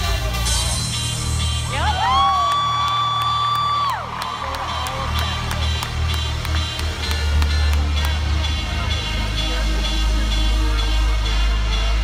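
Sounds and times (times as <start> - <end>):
electronic dance music: 0.0 - 12.0
crowd cheering: 1.7 - 8.2.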